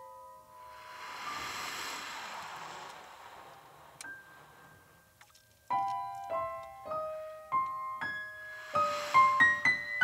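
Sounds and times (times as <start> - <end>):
cymbal swell: 0.4 - 5.2.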